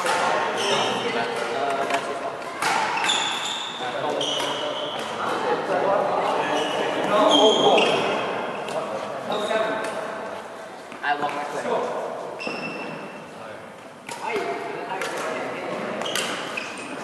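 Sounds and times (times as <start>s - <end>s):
rackets hitting shuttlecock: 0.0s - 3.4s, 4.3s - 5.3s, 14.0s - 16.9s
shoes squeaking on court: 0.5s - 1.4s, 2.8s - 5.2s, 6.3s - 8.3s, 9.2s - 9.7s, 12.4s - 13.2s, 15.8s - 17.0s.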